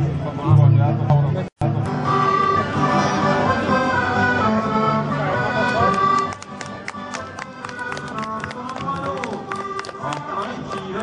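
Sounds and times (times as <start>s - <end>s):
people's voices: 0.0s - 11.0s
accordion music: 1.6s - 11.0s.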